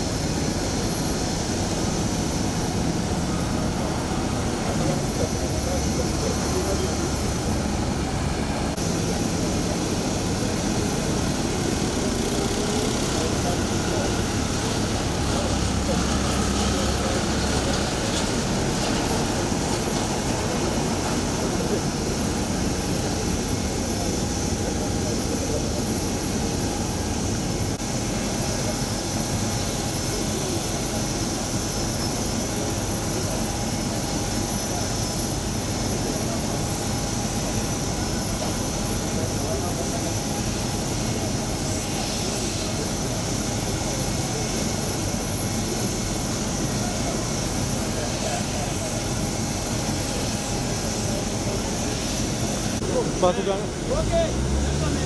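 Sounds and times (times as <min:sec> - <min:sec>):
jet engine rush: 0:00.0 - 0:55.0.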